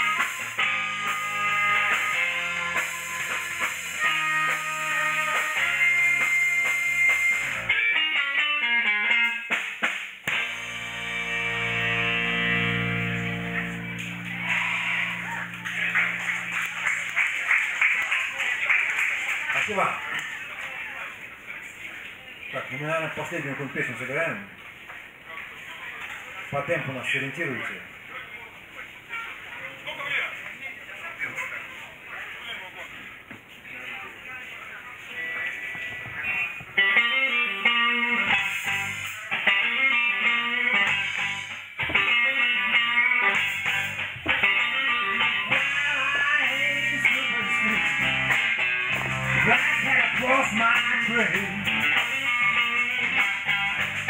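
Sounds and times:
electric guitar picking and strumming: 0.0 - 17.5, 35.4 - 54.0
band holding final chord: 10.3 - 17.2
audience voices: 13.5 - 22.5
scattered clapping: 13.9 - 20.9.

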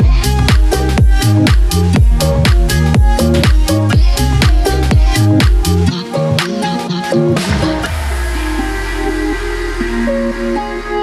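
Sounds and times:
deep bass note: 0.0 - 5.9, 7.4 - 11.0
electronic stepping melody: 0.0 - 11.0.

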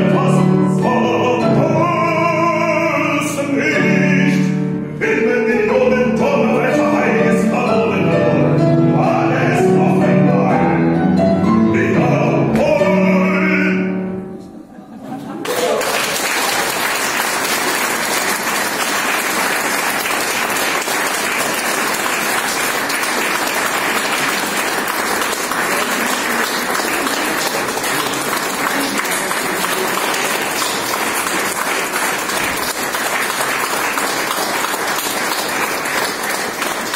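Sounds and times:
audience applauding: 15.2 - 36.9.

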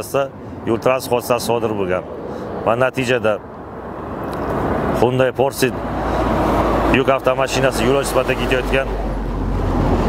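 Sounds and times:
road vehicle approaching: 0.0 - 10.0.

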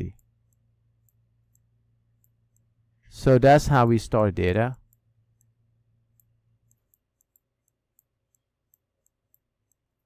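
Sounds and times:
person speaking: 0.0 - 0.3, 3.0 - 4.9
stylus ticking on pen screen: 0.0 - 2.9, 4.8 - 10.0
low electrical hum: 0.0 - 10.0.

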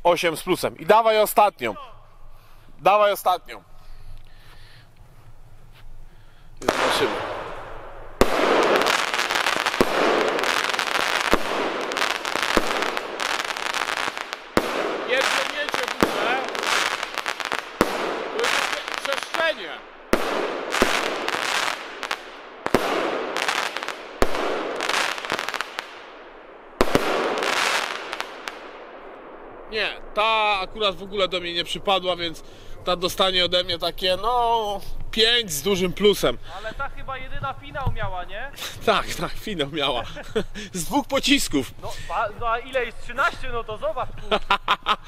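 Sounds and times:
firework hissing and crackling: 6.6 - 26.1, 26.8 - 28.8
firework bangs: 6.6 - 33.4.

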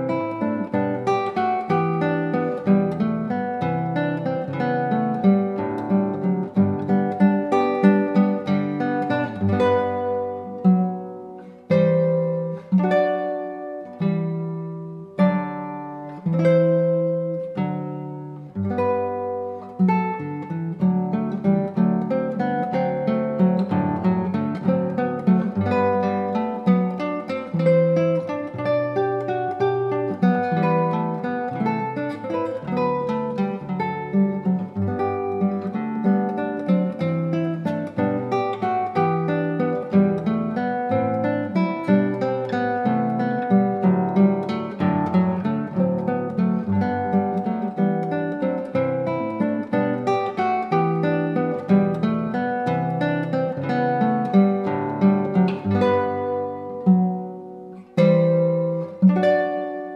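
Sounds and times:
classical guitar fingerstyle: 0.0 - 59.9.

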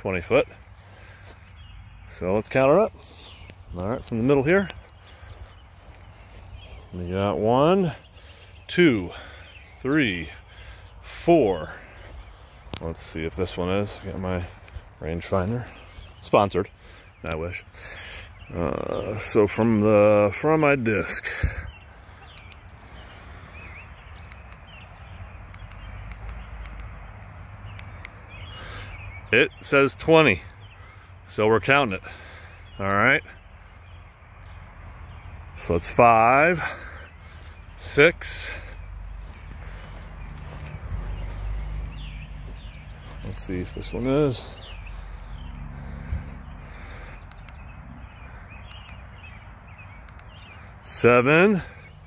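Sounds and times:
bird chirps: 0.0 - 52.0.

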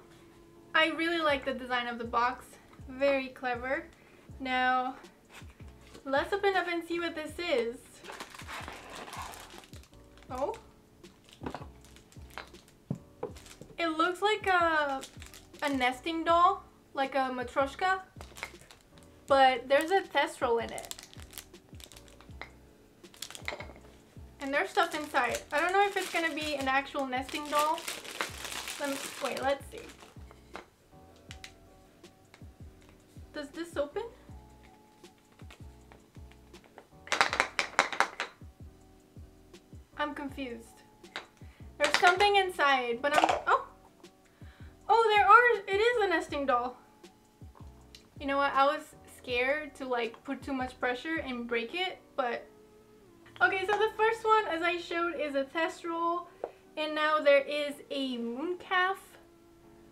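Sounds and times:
faint background music: 0.0 - 59.9.

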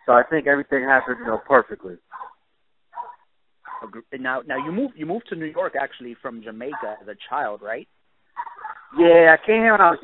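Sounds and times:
dog barking over telephone: 0.9 - 5.9, 6.6 - 7.1, 8.4 - 9.0.

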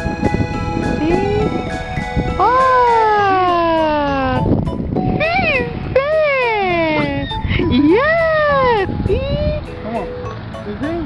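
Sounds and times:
toddler wailing: 2.4 - 4.4.

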